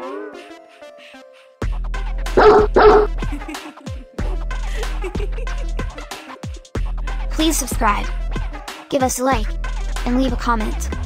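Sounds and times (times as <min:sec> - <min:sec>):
music with deep bass beat: 0:01.6 - 0:08.8, 0:09.4 - 0:11.0
dog barking: 0:02.4 - 0:03.2.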